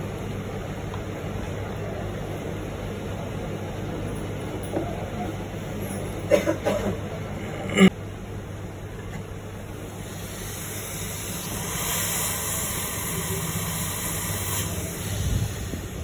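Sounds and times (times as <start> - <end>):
hot air station blowing hiss: 9.8 - 16.0.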